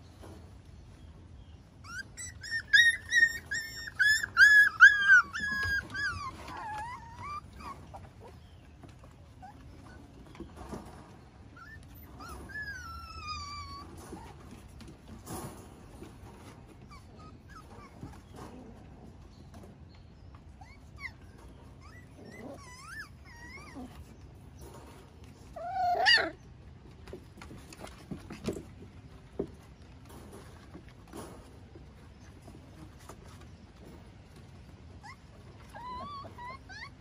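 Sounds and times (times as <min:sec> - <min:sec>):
puppies whimpering: 0:01.4 - 0:15.2, 0:15.8 - 0:26.6, 0:34.6 - 0:37.0
puppy crying: 0:01.8 - 0:08.4, 0:11.5 - 0:14.4, 0:16.8 - 0:18.3, 0:20.6 - 0:24.2, 0:25.5 - 0:26.4, 0:35.0 - 0:37.0.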